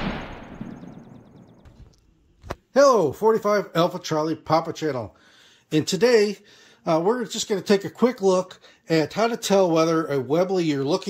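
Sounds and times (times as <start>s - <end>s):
reverberant gunshot-like boom: 0.0s - 1.7s.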